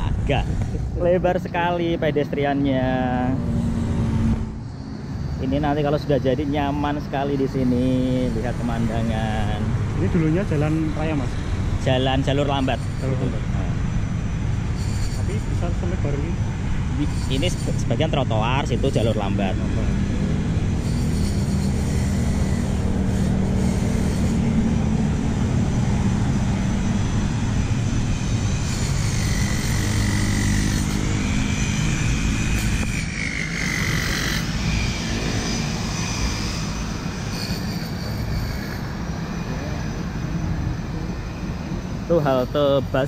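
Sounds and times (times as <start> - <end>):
faint high whine: 0.0 - 43.0
road traffic rumble: 0.0 - 43.0.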